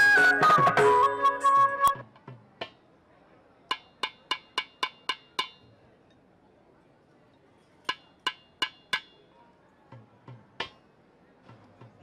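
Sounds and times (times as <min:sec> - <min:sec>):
small metal percussion strikes: 0:03.7 - 0:05.7, 0:07.9 - 0:09.2.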